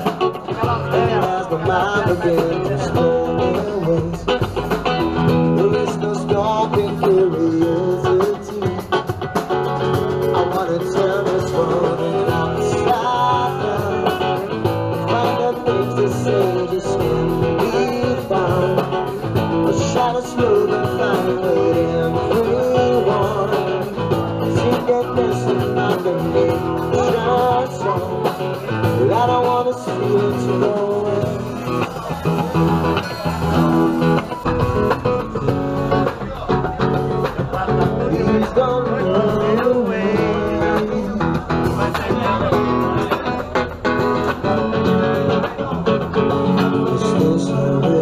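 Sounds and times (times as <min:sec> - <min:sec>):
electric guitar: 0:00.0 - 0:48.0.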